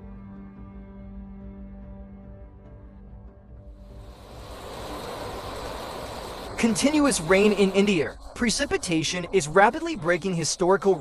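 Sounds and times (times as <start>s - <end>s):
strong wind: 3.8s - 11.0s
heavy rain: 3.9s - 11.0s.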